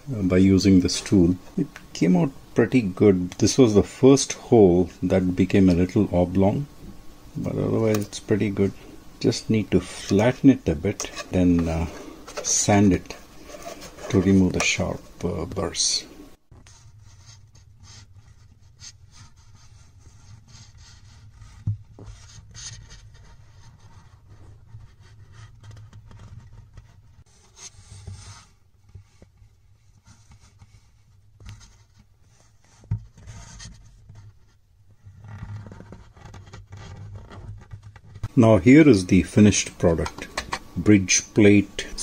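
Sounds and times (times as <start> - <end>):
scraping and rubbing: 7.4 - 42.0.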